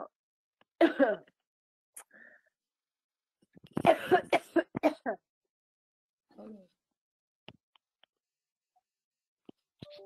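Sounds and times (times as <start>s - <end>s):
person coughing: 0.8s - 1.3s, 3.8s - 5.2s.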